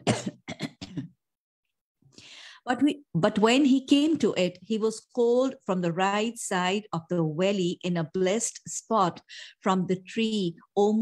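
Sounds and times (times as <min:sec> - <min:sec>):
woman coughing: 0:00.0 - 0:01.1
woman clearing her throat: 0:00.0 - 0:01.2.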